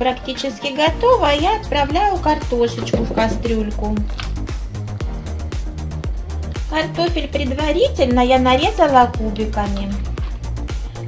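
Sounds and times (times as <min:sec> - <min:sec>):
music with steady beat: 0:00.9 - 0:11.0
sustained low bass notes: 0:01.2 - 0:06.4.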